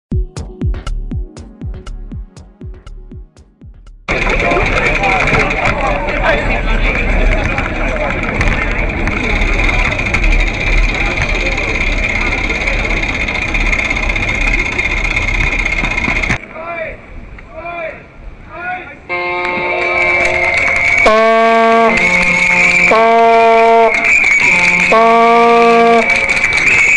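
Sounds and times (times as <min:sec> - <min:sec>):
crowd chattering: 0:04.1 - 0:17.1
steady high tone: 0:19.1 - 0:26.9
vuvuzela horn blowing: 0:19.1 - 0:26.9.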